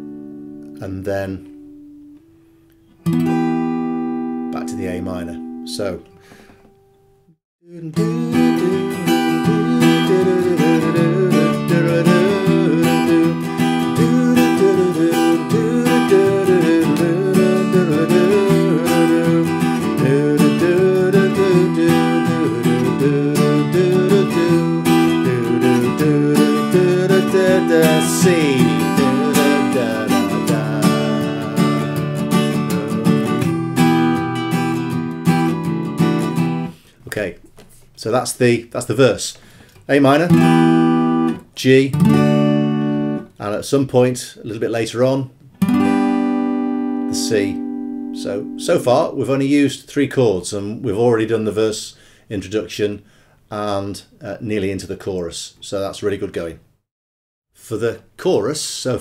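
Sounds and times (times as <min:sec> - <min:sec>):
acoustic guitar strumming: 0:00.0 - 0:36.9, 0:39.6 - 0:43.4, 0:45.4 - 0:49.1.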